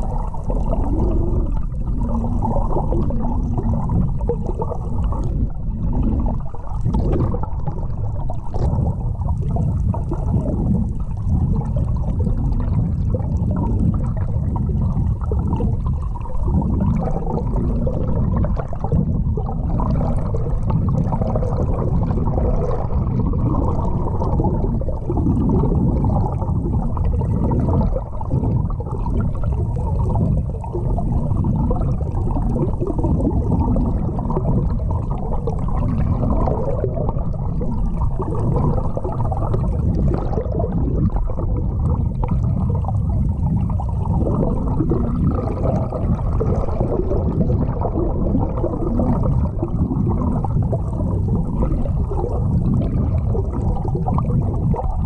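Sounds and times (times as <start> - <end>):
underwater rush and gurgle: 0.0 - 55.0.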